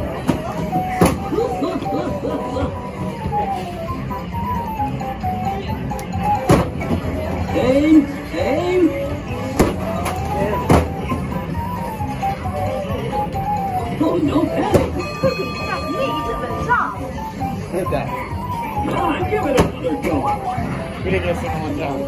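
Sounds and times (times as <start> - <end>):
arcade machine music: 0.0 - 22.0.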